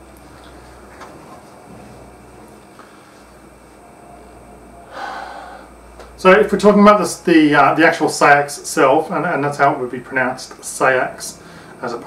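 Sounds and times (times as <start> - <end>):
man drawing a breath: 4.9 - 5.7, 11.4 - 11.8.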